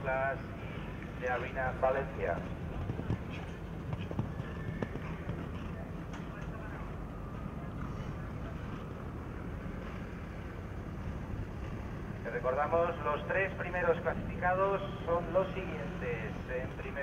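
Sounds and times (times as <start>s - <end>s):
horse hooves cantering on sand: 1.3s - 9.0s.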